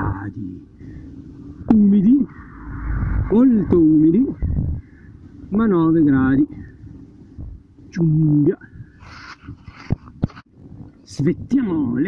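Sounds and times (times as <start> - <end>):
bicycle road rumble: 0.0 - 12.0
wind: 0.0 - 12.0.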